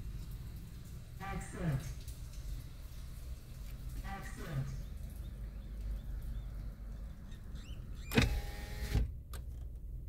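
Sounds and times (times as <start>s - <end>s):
power window motor whine: 8.0s - 9.1s.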